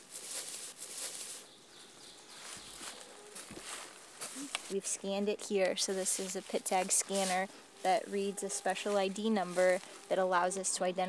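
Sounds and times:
cloth and fur rustling: 0:00.0 - 0:01.5
faint woodland hiss: 0:00.1 - 0:10.9.

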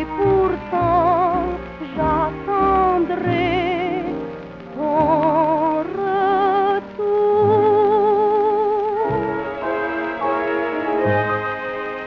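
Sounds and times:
old popular song from a record: 0:00.0 - 0:12.0.

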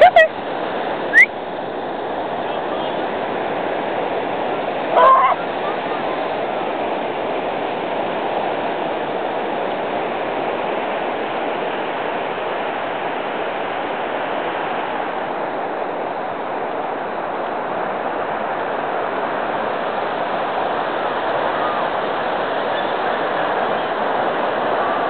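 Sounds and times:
ocean surf breaking: 0:00.0 - 0:25.0.

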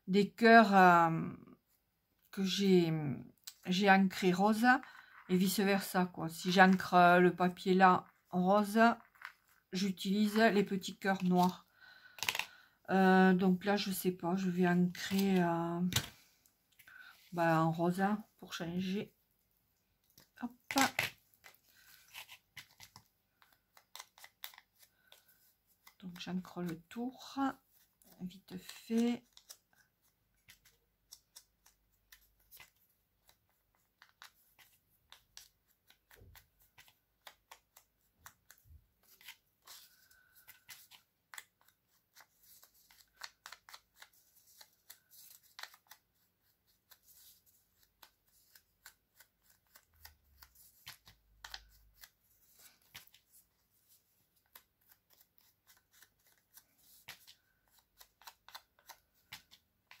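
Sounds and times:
paper rustling: 0:20.1 - 0:26.8, 0:27.5 - 1:00.0.

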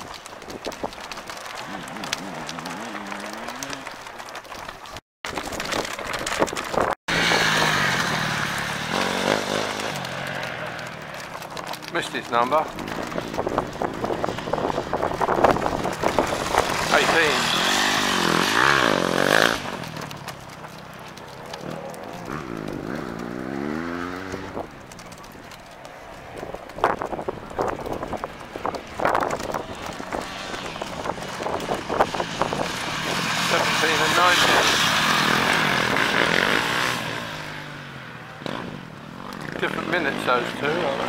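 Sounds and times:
motorcycles revving past: 0:07.1 - 0:12.5, 0:15.9 - 0:20.3, 0:21.6 - 0:24.8, 0:30.2 - 0:41.0.

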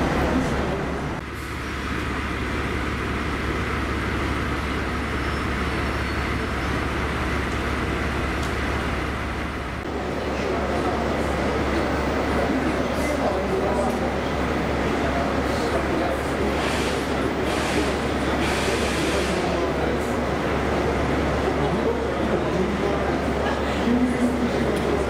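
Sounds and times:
locomotive running hum: 0:00.0 - 0:25.0
murmur of passengers talking: 0:00.0 - 0:25.0.

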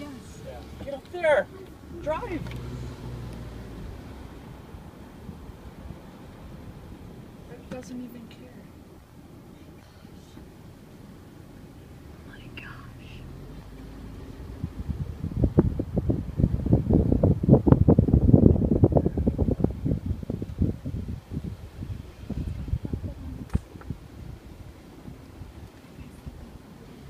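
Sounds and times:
wind buffeting microphone: 0:00.0 - 0:07.5, 0:13.6 - 0:27.0
moving car hum: 0:00.0 - 0:27.0.

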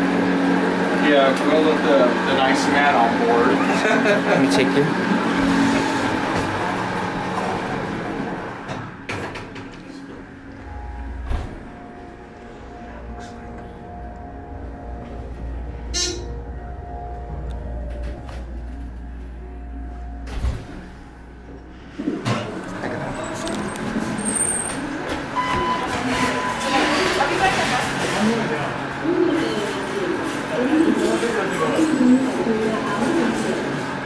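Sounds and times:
distant voices: 0:00.0 - 0:34.0
elevator humming: 0:00.0 - 0:34.0
elevator doors opening: 0:02.4 - 0:34.0
elevator stopping clunk: 0:05.0 - 0:27.8
elevator chime: 0:10.1 - 0:27.4.

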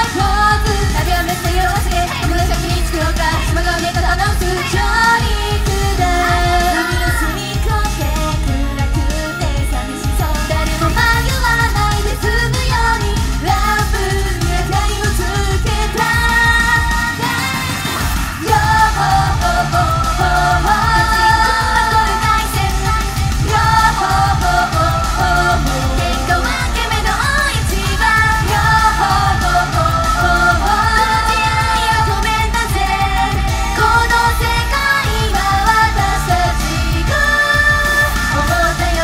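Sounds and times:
girl group singing pop song: 0:00.0 - 0:39.0
pop backing with steady beat: 0:00.0 - 0:39.0.

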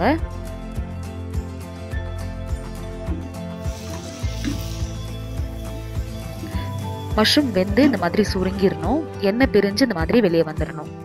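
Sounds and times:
background music with steady beat: 0:00.0 - 0:11.0
food sizzling in a pot: 0:03.2 - 0:08.4.

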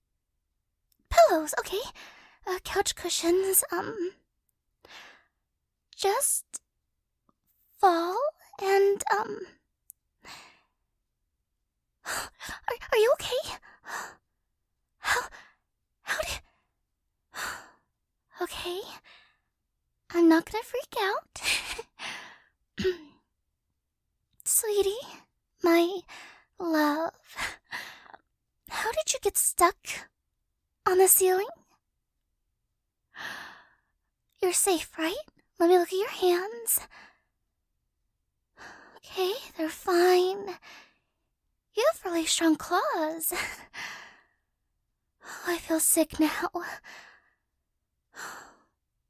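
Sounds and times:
woman breathing: 0:04.8 - 0:05.4, 0:21.5 - 0:22.6, 0:33.2 - 0:33.9, 0:46.8 - 0:47.5.

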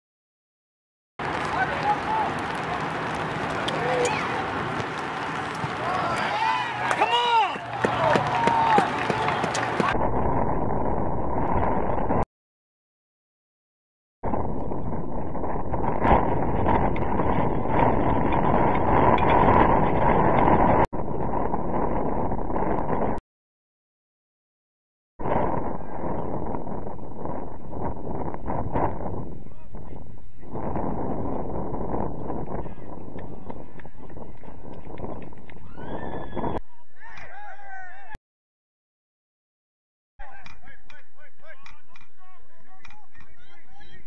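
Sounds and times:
wind buffeting microphone: 0:01.2 - 0:12.2, 0:14.2 - 0:23.2, 0:25.2 - 0:37.3
person shouting: 0:05.8 - 0:08.9.

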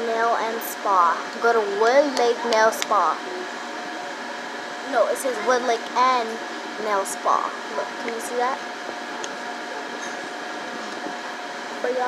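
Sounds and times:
blow dryer running: 0:00.0 - 0:12.0.

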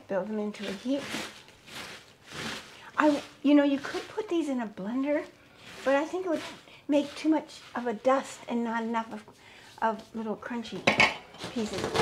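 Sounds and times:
hands sweeping bread crusts: 0:00.2 - 0:10.6.

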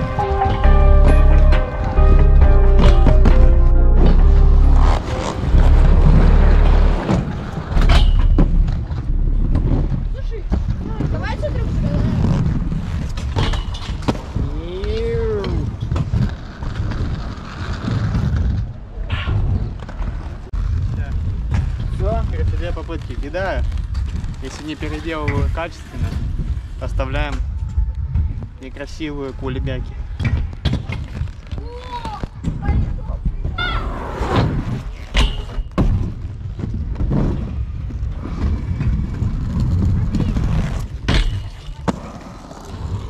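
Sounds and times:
inline skate wheels on concrete: 0:00.0 - 0:43.0
wind rumble on microphone: 0:04.1 - 0:35.1, 0:35.8 - 0:41.2.

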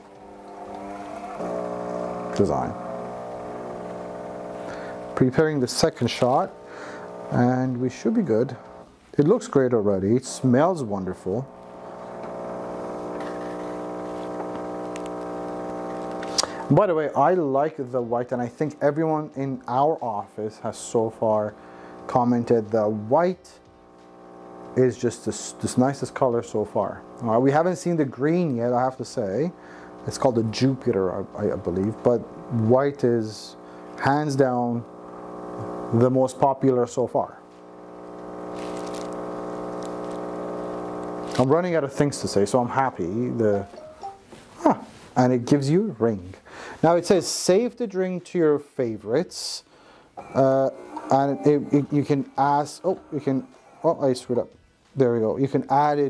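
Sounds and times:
espresso machine pump humming: 0:00.0 - 0:08.9, 0:11.4 - 0:36.4, 0:37.3 - 0:42.5
espresso streaming into glasses: 0:00.0 - 0:08.9, 0:11.4 - 0:23.0, 0:23.9 - 0:34.0, 0:37.6 - 0:42.4.

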